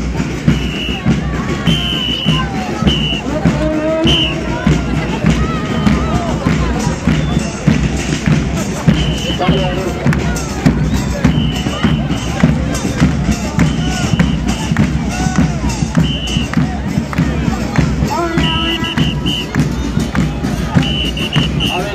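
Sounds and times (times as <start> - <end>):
crowd singing and shouting: 0.0 - 21.9
drums beating: 0.0 - 21.9.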